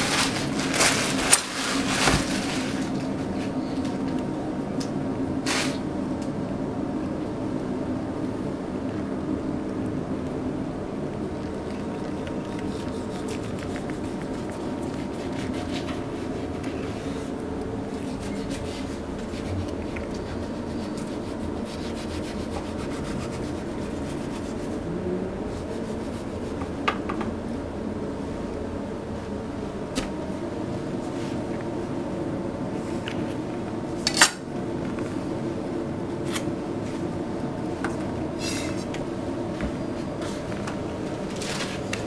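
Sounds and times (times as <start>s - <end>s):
low background hum: 0.0s - 42.0s
steady background noise: 0.0s - 42.0s
knife rubbing through raw fish: 12.0s - 24.9s, 25.5s - 26.7s.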